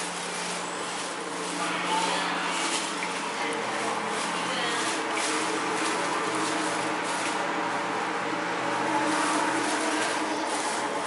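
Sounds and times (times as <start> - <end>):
ship engines droning: 0.0 - 11.0.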